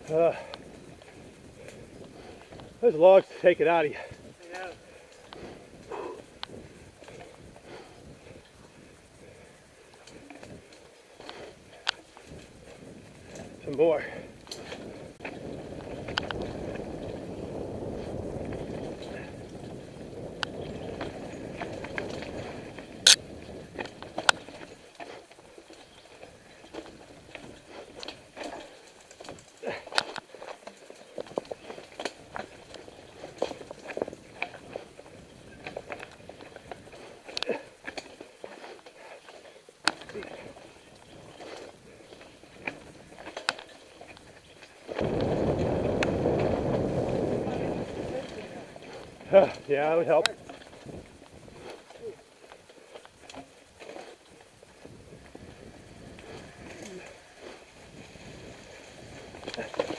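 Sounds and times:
rushing wind noise: 0.0s - 24.8s, 40.2s - 52.4s, 54.4s - 59.9s
bike clicks and rattles: 0.0s - 59.9s.

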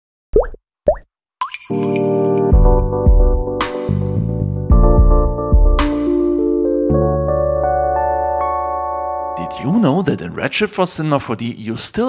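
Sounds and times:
sustained musical chord: 6.2s - 10.4s.

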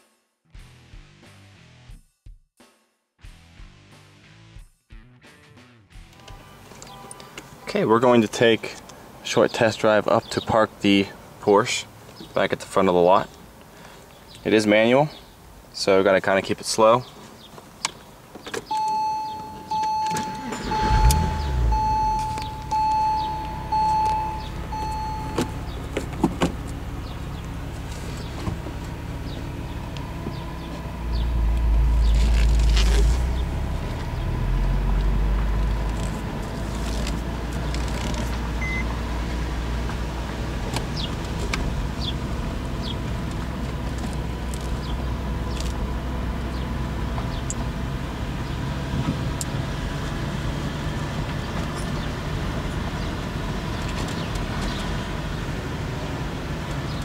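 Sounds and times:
car engine starting and idling: 18.6s - 57.0s
seat-belt warning chime beeps: 18.7s - 25.8s, 38.6s - 38.9s.

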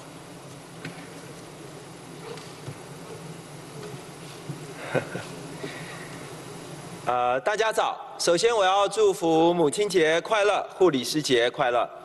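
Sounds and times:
low buzzing hum: 0.0s - 8.1s.

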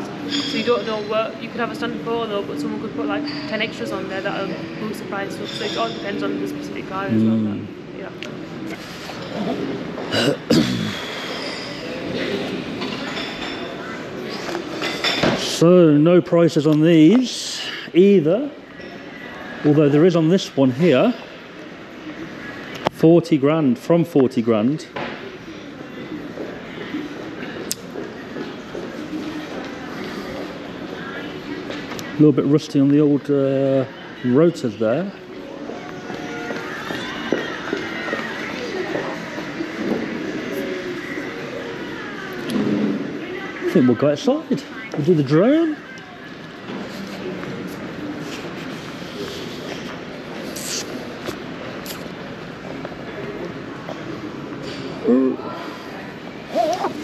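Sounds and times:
distant voices murmuring: 0.0s - 15.6s, 25.2s - 32.2s
faint indistinct voices: 0.0s - 57.0s
showroom hubbub: 0.0s - 57.0s.

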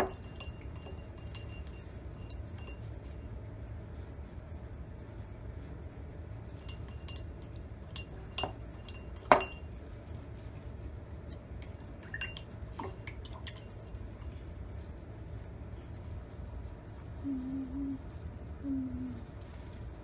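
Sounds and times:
paintbrush tapping glass jar: 0.0s - 3.0s, 6.6s - 9.7s.

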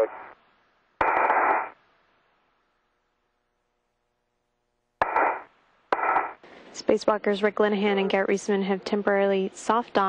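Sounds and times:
radio static burst: 0.0s - 0.4s, 1.0s - 1.8s, 5.0s - 6.4s.

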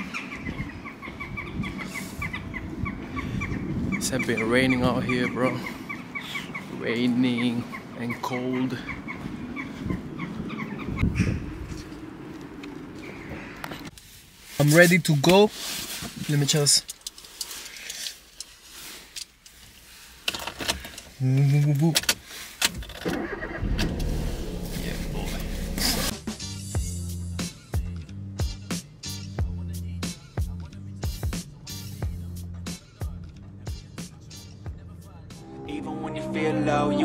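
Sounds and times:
bird chirping: 0.0s - 11.6s
small objects clicking and rustling: 16.8s - 19.6s.

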